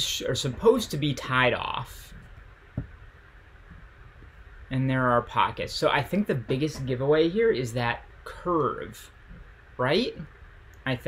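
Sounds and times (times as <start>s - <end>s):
soft thump: 2.2s - 3.0s.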